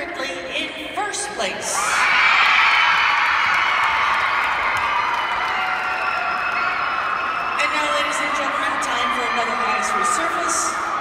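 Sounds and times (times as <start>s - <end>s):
high voices screaming and cheering: 1.7s - 11.0s.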